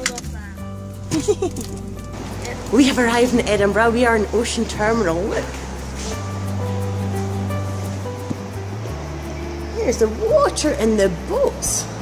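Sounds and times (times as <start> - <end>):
background music with light beat: 0.0 - 12.0.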